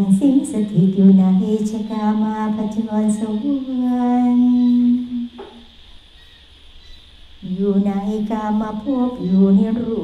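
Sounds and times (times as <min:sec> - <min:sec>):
faint steady high tone: 0:00.0 - 0:10.0
women chanting: 0:07.4 - 0:10.0.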